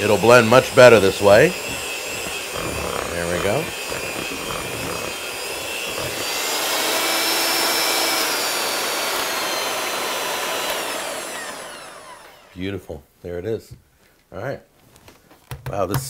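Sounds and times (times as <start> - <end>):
electric hand mixer whirring: 0.0 - 12.6.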